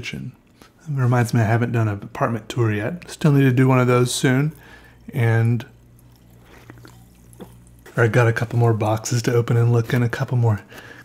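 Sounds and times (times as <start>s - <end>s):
low room hum: 0.0s - 11.0s
person sipping from a can: 5.8s - 8.0s.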